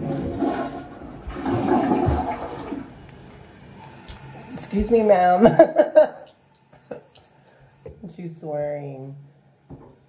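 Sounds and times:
toilet flushing: 0.0 - 3.1, 3.7 - 7.9.

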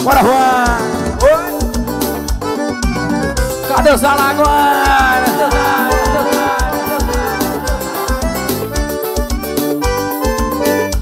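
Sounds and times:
electronic keyboard melody: 0.0 - 11.0
steady kick-drum beat: 0.1 - 9.4.

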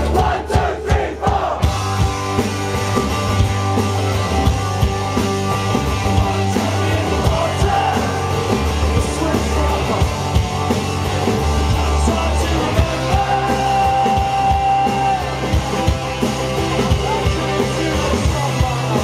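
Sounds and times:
drum kit: 0.0 - 19.0
man singing: 6.2 - 10.2, 11.6 - 15.6, 16.9 - 19.0.

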